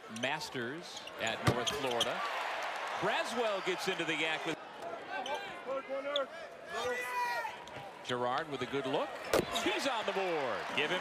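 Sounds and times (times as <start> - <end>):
voices in an arena: 0.0 - 11.0.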